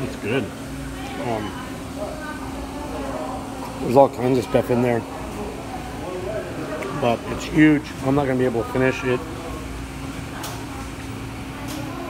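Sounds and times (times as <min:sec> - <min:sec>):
even background noise: 0:00.0 - 0:12.0
steady hum: 0:00.0 - 0:12.0.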